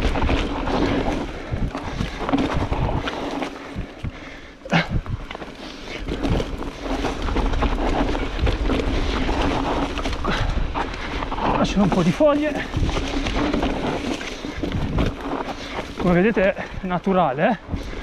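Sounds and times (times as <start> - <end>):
bike tyres rolling over leaves: 0.0 - 18.0
wind buffeting microphone: 0.0 - 18.0.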